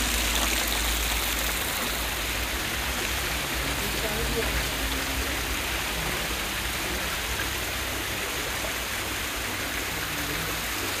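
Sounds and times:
water splashing into fountain pool: 0.0s - 11.0s.

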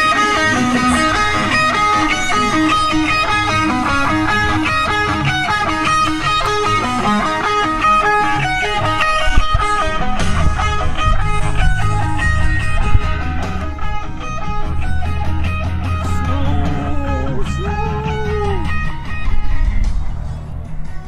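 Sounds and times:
electric guitar lines: 0.0s - 21.0s
rock music bass and drums: 0.0s - 21.0s.

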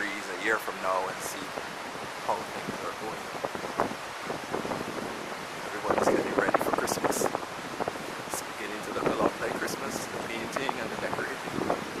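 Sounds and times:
steady outdoor hiss: 0.0s - 12.0s
wind on microphone: 0.0s - 12.0s.

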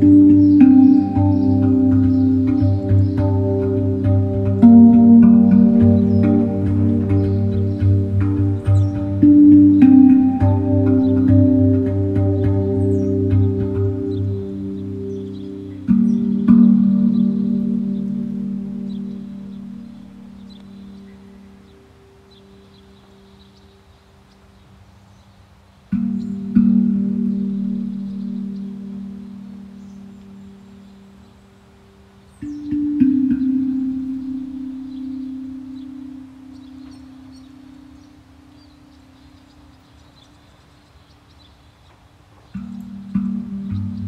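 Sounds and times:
handpan notes ringing: 0.0s - 23.4s, 25.9s - 40.6s, 42.5s - 44.0s
low sustained tone: 0.0s - 23.9s, 25.9s - 40.8s, 42.6s - 44.0s
faint bird chirps: 0.0s - 44.0s.

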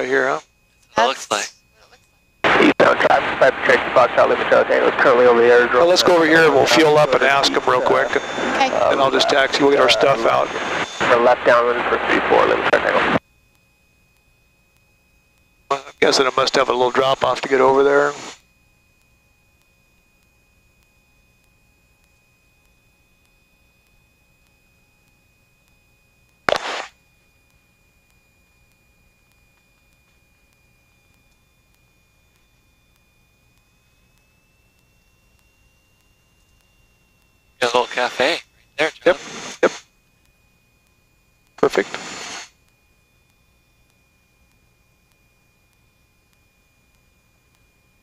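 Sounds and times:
faint steady high tone: 0.0s - 39.2s
sharp click: 26.5s - 27.0s
short burst of static: 26.5s - 27.0s, 37.6s - 39.9s, 41.6s - 42.6s
short hiss: 26.5s - 27.0s, 39.1s - 39.9s, 41.8s - 42.6s.

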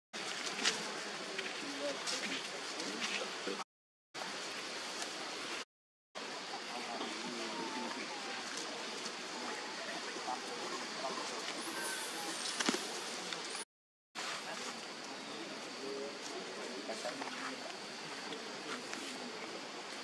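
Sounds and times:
outdoor background hiss: 14.2s - 20.0s.

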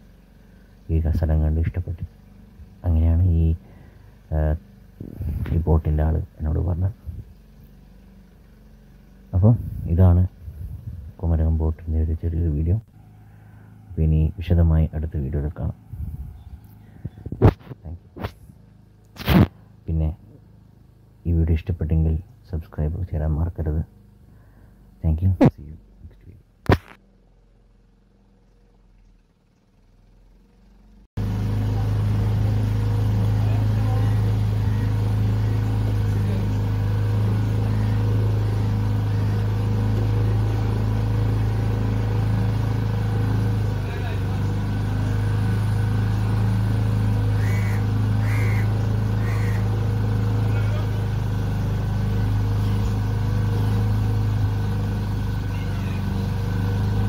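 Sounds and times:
boat engine humming: 0.0s - 57.0s.

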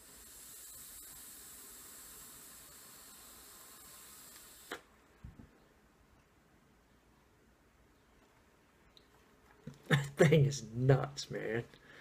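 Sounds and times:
vape draw hiss: 0.0s - 4.9s.

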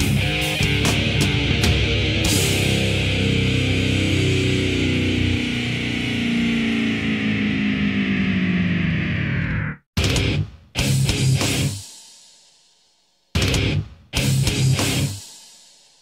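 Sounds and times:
heavy metal band: 0.0s - 11.9s, 13.4s - 15.4s.

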